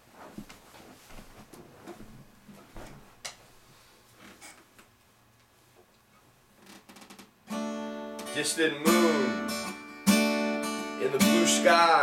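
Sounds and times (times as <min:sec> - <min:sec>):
person moving about room: 0:00.0 - 0:07.4.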